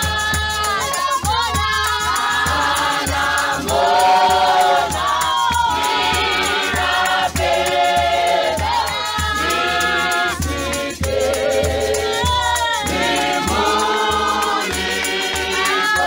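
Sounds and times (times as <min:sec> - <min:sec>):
congregation singing a hymn: 0:00.0 - 0:16.0
steady low beat: 0:02.0 - 0:16.0.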